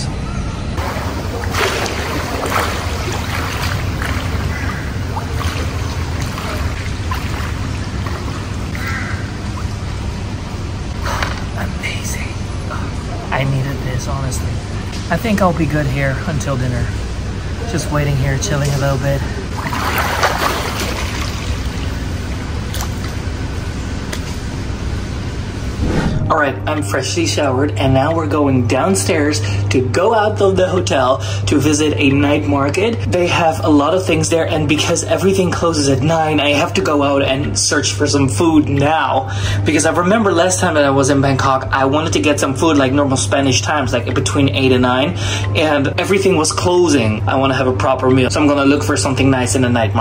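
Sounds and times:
low outdoor rumble: 0:00.0 - 0:50.0
water running: 0:00.8 - 0:10.6, 0:18.5 - 0:23.2.

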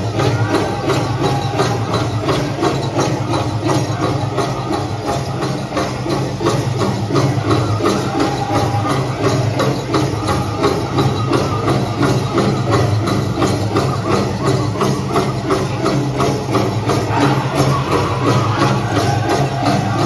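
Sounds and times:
big drum beating: 0:00.0 - 0:20.0
group singing: 0:17.0 - 0:20.0.

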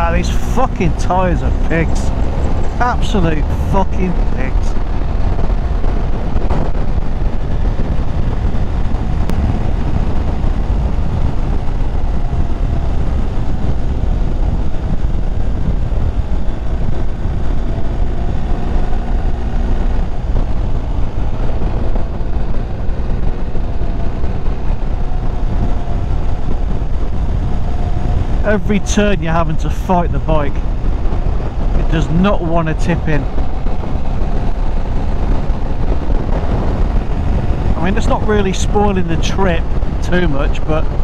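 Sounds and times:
motorcycle engine running: 0:00.0 - 0:29.0, 0:30.2 - 0:40.0
wind rushing on microphone: 0:00.0 - 0:41.0.

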